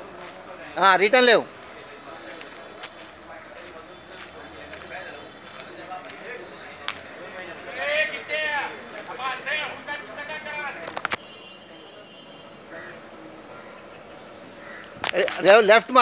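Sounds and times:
voices talking: 0.0 - 16.0.

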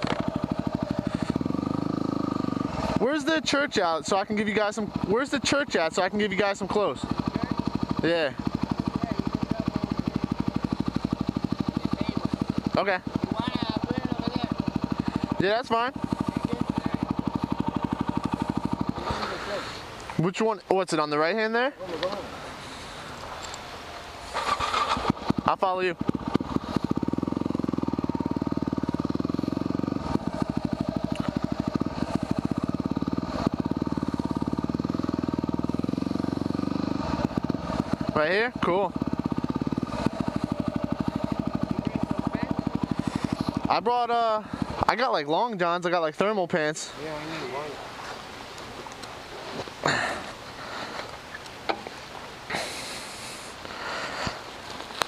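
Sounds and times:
motorcycle engine idling: 0.0 - 55.0.

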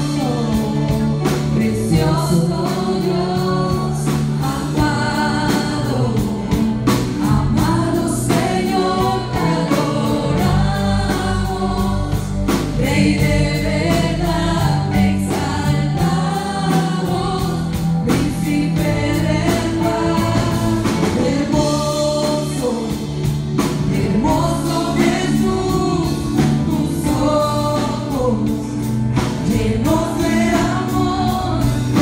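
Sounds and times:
drum kit beat: 0.0 - 32.0
electric guitar: 0.0 - 32.0
women singing into microphones: 0.0 - 32.0.

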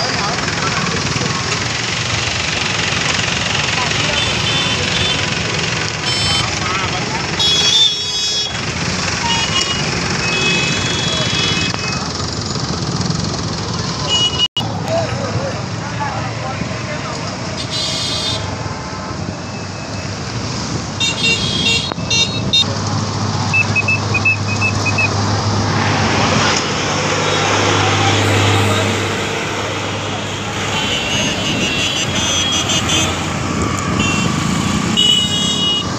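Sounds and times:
traffic engine and road noise: 0.0 - 35.9
vehicle horn toots: 4.0 - 5.3, 6.0 - 6.6, 7.4 - 8.6, 9.2 - 12.1, 14.0 - 14.5, 17.6 - 18.5, 21.0 - 22.7, 30.5 - 35.9.

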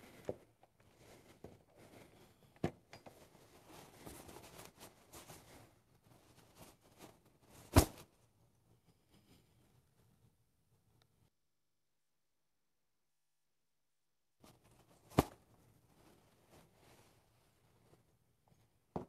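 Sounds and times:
fabric rustling: 3.1 - 8.2, 14.4 - 18.3.

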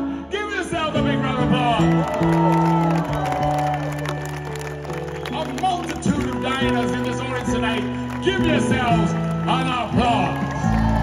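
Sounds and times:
live band sustained chords: 0.0 - 11.0
crowd cheering and clapping: 1.6 - 11.0.

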